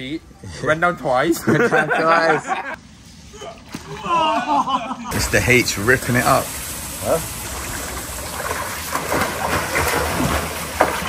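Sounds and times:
swimmer splashing in pool: 5.1 - 11.0.

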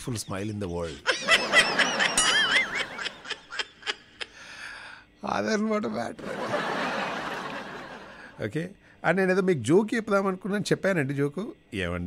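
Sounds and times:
snickering laughter: 1.0 - 4.3.

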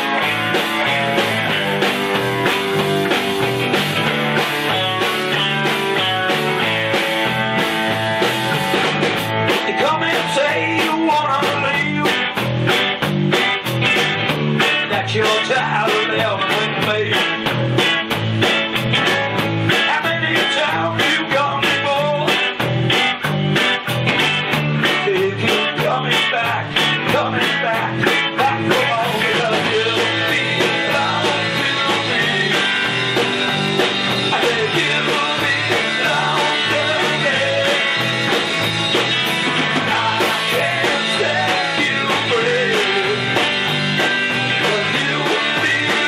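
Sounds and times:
rock band playing: 0.0 - 46.0.

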